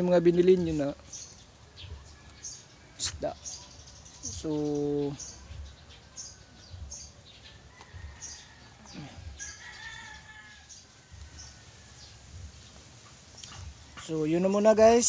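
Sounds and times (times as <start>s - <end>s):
rooster crowing: 7.5s - 12.3s.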